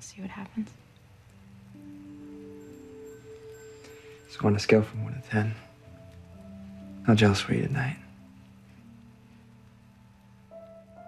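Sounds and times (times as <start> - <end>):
soft sustained score notes: 0.0 - 11.0.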